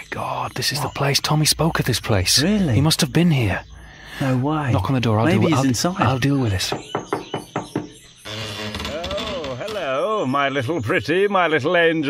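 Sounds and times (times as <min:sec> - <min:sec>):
knocking on a door: 0:06.0 - 0:08.0.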